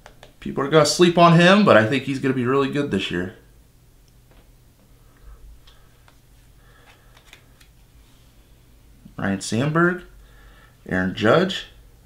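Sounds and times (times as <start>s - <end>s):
steady low hum: 0.0s - 12.0s
trading cards being shuffled: 6.8s - 7.8s.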